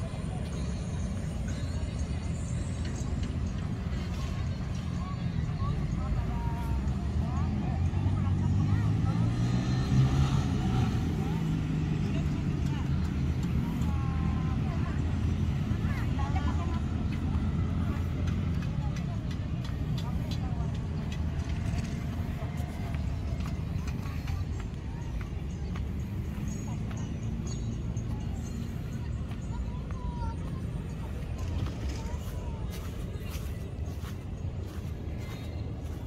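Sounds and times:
people talking: 0.0 - 36.0
vehicle engine running: 0.0 - 36.0.

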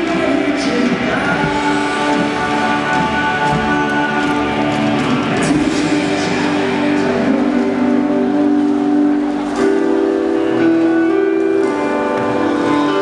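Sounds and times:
punk rock band playing: 0.0 - 13.0.

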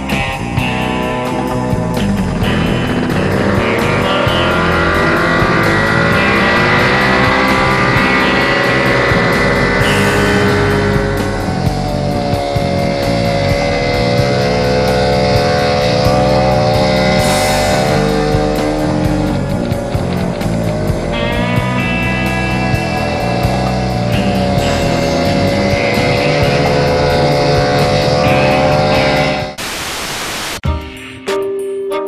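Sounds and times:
guitar music: 0.0 - 29.6
hovercraft engine revving: 0.0 - 29.7.

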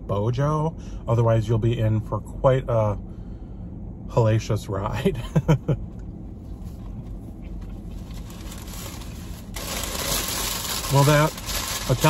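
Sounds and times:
low steady hum: 0.0 - 12.0
paper wrapper rustling: 7.8 - 12.0.

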